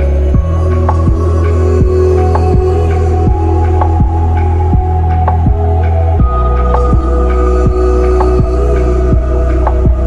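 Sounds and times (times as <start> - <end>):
slow deep electronic music: 0.0 - 10.0.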